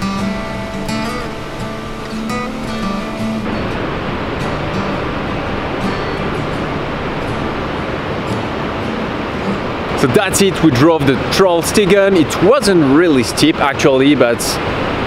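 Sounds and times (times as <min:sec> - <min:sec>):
acoustic guitar music: 0:00.0 - 0:13.8
waterfall rushing: 0:00.0 - 0:15.0.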